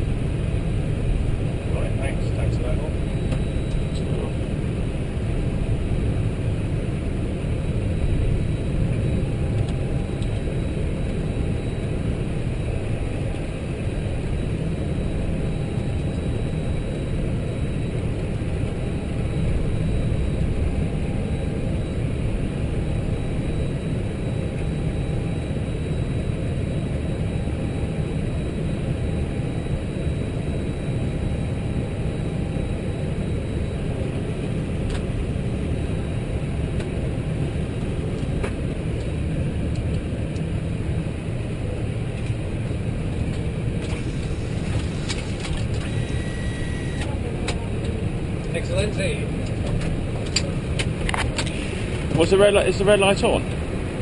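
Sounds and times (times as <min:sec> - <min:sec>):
cockpit rumble and hum: 0:00.0 - 0:54.0
faint steady tones: 0:00.0 - 0:54.0
brief beep: 0:03.0 - 0:04.2, 0:45.8 - 0:47.1.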